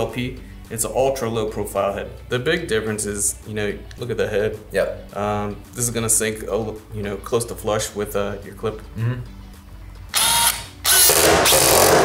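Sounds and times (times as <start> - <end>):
screw gun driving screw: 10.1 - 12.0.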